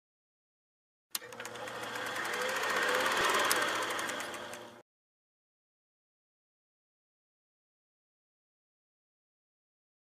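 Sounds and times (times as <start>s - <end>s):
film projector clatter: 1.2s - 4.8s.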